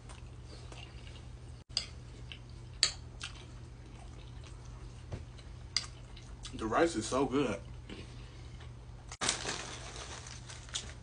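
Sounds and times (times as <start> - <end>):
chewing: 0.0 - 6.6.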